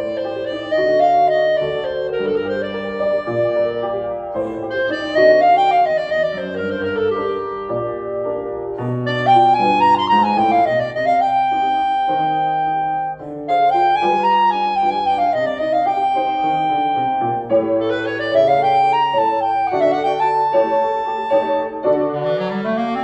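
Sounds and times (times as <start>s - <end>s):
clarinet melody: 0.0s - 23.0s
piano chords: 0.0s - 23.0s.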